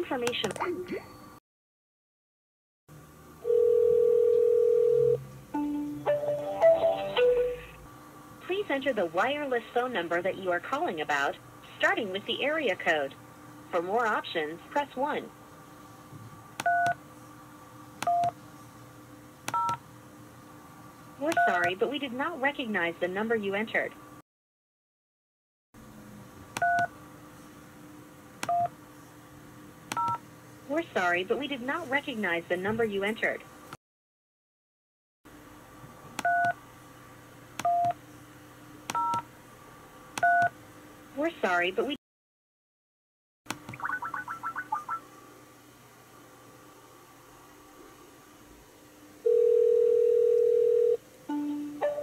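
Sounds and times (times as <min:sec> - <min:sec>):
faint steady hum: 0:02.9 - 0:24.2, 0:43.5 - 0:52.0.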